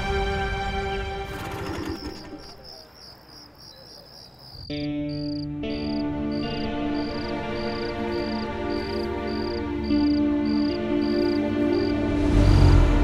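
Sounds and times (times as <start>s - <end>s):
soft sustained music: 0.0s - 2.3s, 4.7s - 13.0s
background music: 0.0s - 2.4s, 4.7s - 13.0s
crickets chirping: 1.3s - 13.0s.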